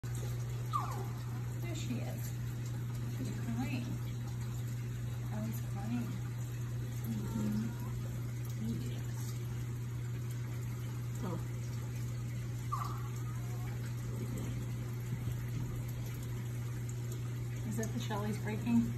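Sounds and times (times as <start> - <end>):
aquarium equipment hum: 0.0 - 18.9
running water: 0.0 - 18.9.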